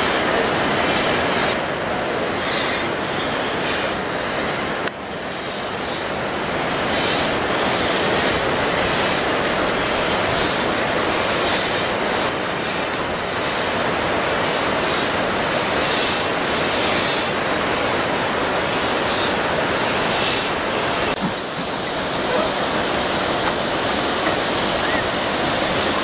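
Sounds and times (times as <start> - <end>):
steady rushing background: 0.0 - 26.0
steam locomotive exhaust beats: 0.0 - 26.0.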